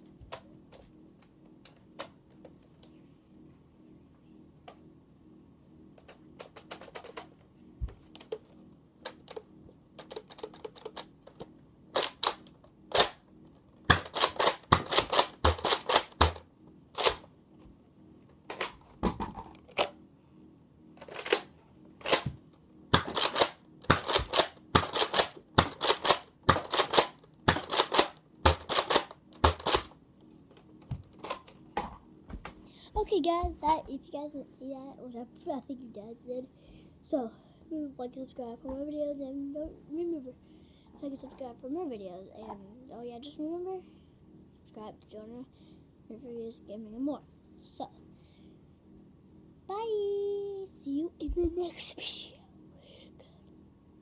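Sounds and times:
toy blaster plastic clicks: 10.0s - 13.2s, 13.9s - 16.4s, 23.0s - 29.9s.

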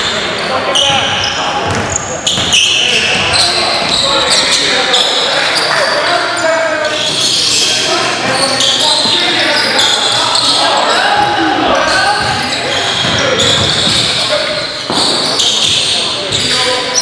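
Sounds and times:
players calling out: 0.0s - 17.0s
sneakers squeaking: 0.0s - 17.0s
basketball bouncing: 0.9s - 4.0s, 12.2s - 14.2s.

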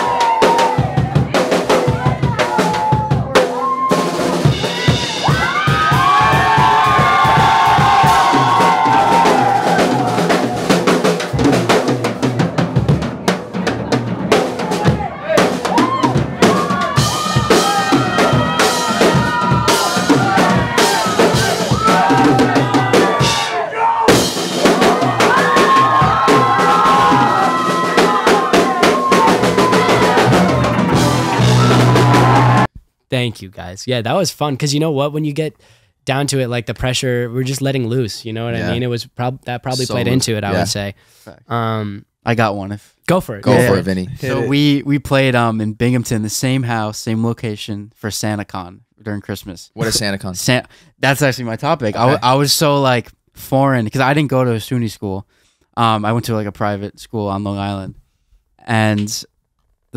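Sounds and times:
drum kit solo: 0.0s - 32.7s, 38.5s - 38.8s, 39.7s - 40.8s, 43.5s - 44.8s.

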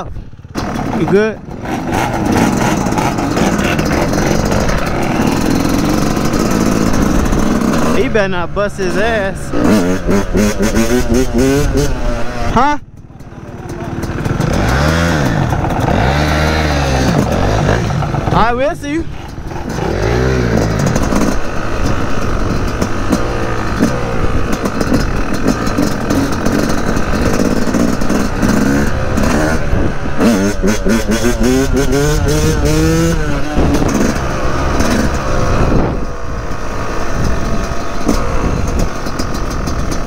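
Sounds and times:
dirt bike engine revving: 0.0s - 40.0s.

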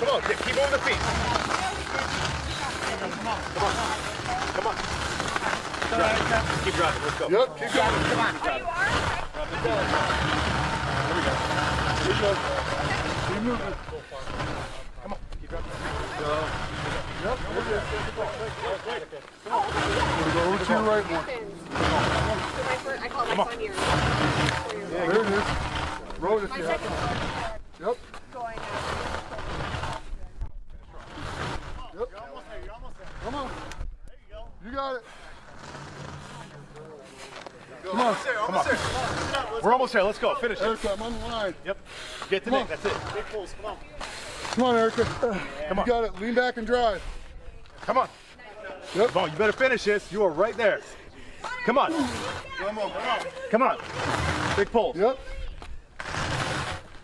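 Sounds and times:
tyre scraping across asphalt: 0.0s - 34.0s, 34.8s - 57.0s.

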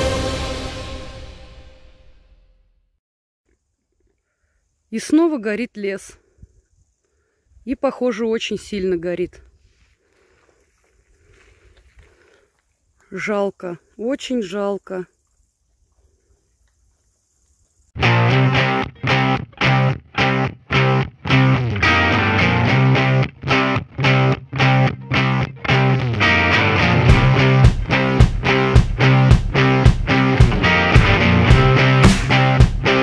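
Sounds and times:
rock music with electric guitar: 18.0s - 33.0s.

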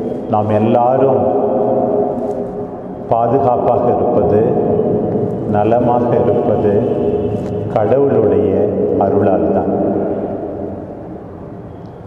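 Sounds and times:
low steady background noise: 0.0s - 12.0s
man speaking: 0.2s - 2.1s, 3.0s - 10.3s.

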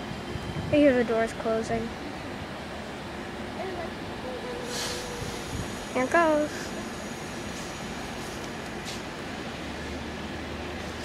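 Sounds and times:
idling train hum: 0.0s - 11.0s
short hiss: 4.7s - 9.1s.

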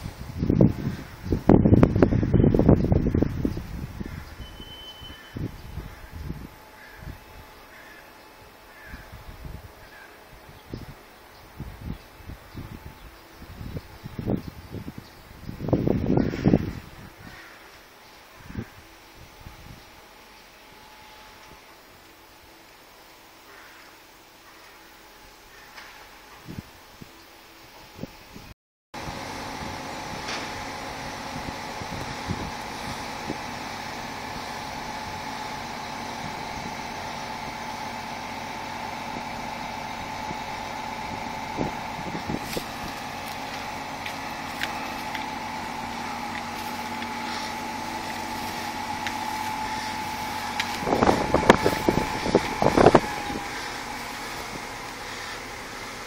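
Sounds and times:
truck engine running: 0.0s - 4.4s, 29.0s - 56.0s.

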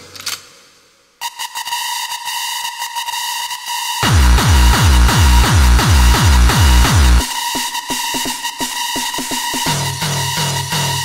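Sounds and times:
high steady synth tone: 2.4s - 7.3s
rapid electronic ticks: 4.0s - 7.3s.

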